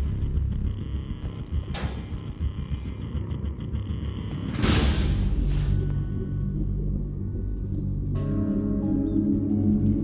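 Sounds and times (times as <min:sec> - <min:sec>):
low rumbling suspense drone: 0:00.0 - 0:10.0.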